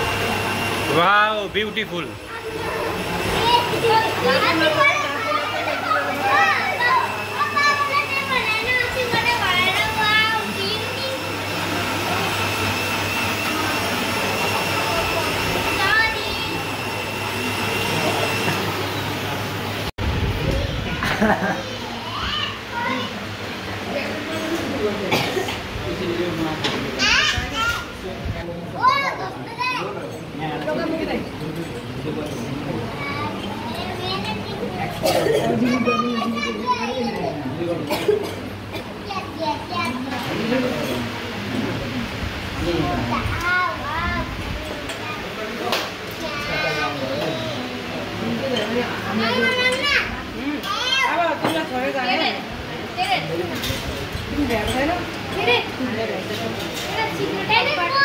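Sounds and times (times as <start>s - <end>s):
general chatter: 0.0s - 58.0s
children talking and calling out: 2.2s - 23.8s, 26.9s - 28.0s, 28.6s - 30.2s, 32.8s - 37.6s, 38.2s - 40.3s, 42.7s - 48.1s, 49.0s - 51.5s, 55.2s - 55.8s, 56.8s - 58.0s.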